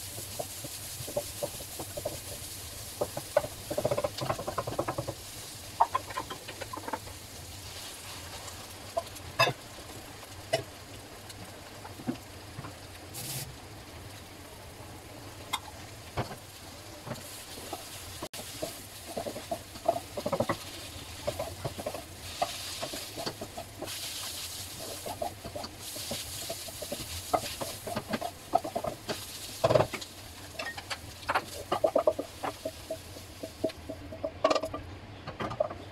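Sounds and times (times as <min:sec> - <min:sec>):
food sizzling in a wok: 0:00.0 - 0:34.7
spatula scraping and tapping pan: 0:00.1 - 0:07.1, 0:15.5 - 0:35.9.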